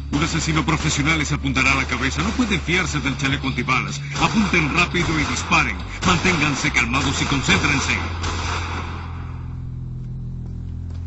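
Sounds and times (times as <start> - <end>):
steady low-pitched drone: 0.0 - 11.0.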